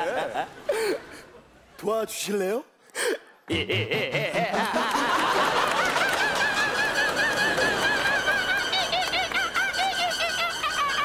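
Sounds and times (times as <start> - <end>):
audience laughing: 0.0 - 1.4, 3.5 - 11.0
man laughing high-pitched: 3.5 - 5.3.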